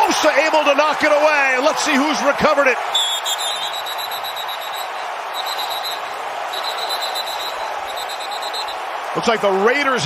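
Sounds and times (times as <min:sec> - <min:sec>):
stadium crowd noise: 0:00.0 - 0:10.0
referee whistle blasts: 0:02.8 - 0:08.9.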